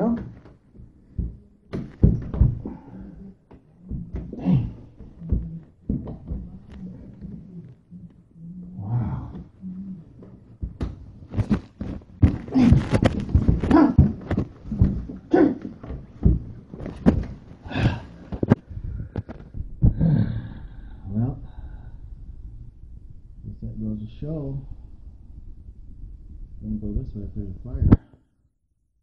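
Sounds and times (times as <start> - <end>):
knocks and thumps on ceiling panel: 0.0 - 6.8, 10.6 - 20.0
man grunting and straining: 2.2 - 8.0, 8.6 - 10.1, 12.2 - 16.0, 17.0 - 18.6, 19.8 - 21.1.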